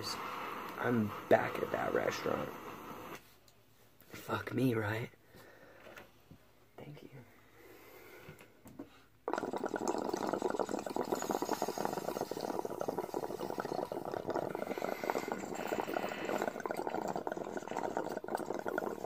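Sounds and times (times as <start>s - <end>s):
water bubbling in a pipe: 9.2s - 19.0s.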